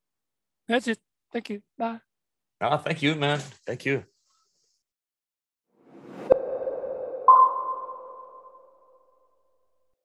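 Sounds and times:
low electronic tone: 6.1s - 9.4s
higher electronic ping: 6.2s - 9.1s.

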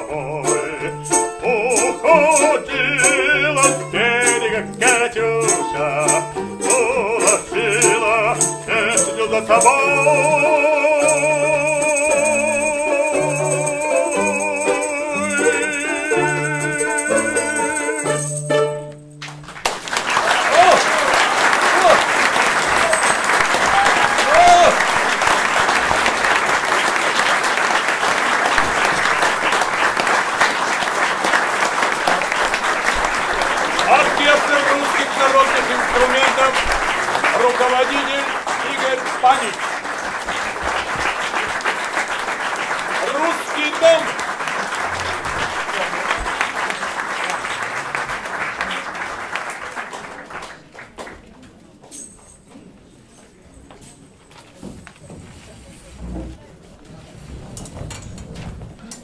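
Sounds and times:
audience applauding: 19.2s - 51.4s.

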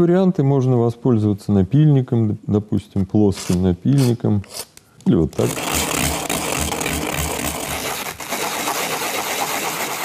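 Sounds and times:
sanding plastic pipe: 5.4s - 10.0s.

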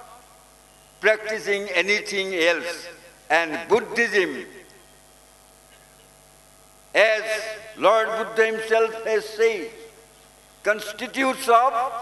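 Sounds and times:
background hiss: 0.0s - 12.0s
electrical mains hum: 0.0s - 12.0s
man speaking: 1.0s - 4.6s, 7.0s - 9.9s, 10.7s - 12.0s.

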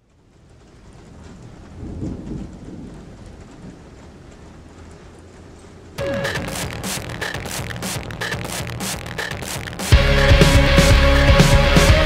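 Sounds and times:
steady rain: 0.0s - 12.0s
low rumble of thunder: 0.4s - 6.0s.

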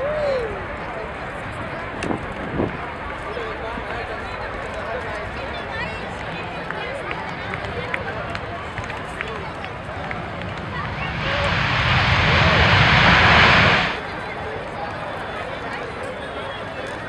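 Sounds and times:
jet engines roaring: 9.7s - 14.0s.

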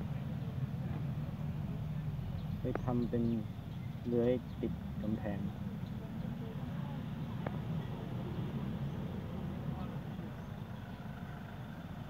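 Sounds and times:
low mechanical rumble: 0.0s - 12.0s.

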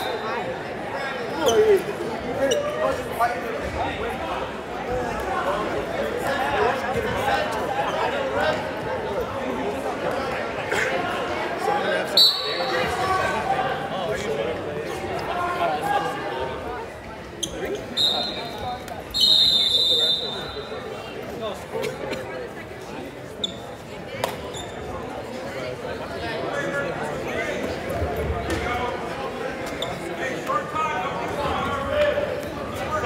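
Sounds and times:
murmur of crowd voices: 0.0s - 33.0s
referee's whistle blast: 12.2s - 13.0s, 17.9s - 20.7s.

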